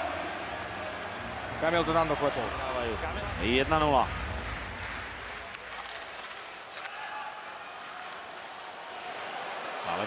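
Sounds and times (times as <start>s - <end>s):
arena crowd noise: 0.0s - 10.0s
sticks and skates clicking on ice: 4.3s - 9.4s.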